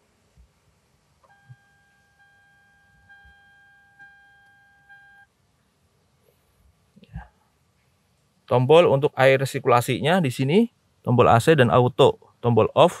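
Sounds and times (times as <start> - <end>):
electronic beep tone: 1.3 - 5.3.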